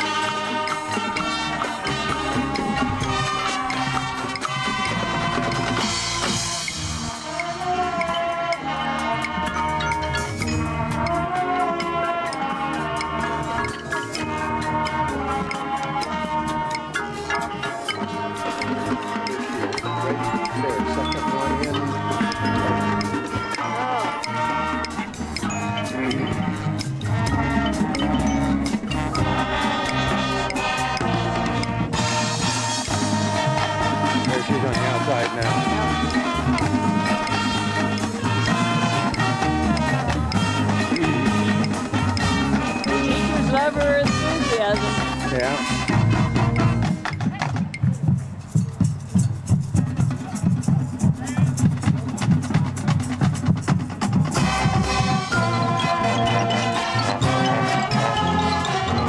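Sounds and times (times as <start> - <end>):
marching band playing: 0.0 - 59.0
sharp percussion strikes: 0.0 - 59.0.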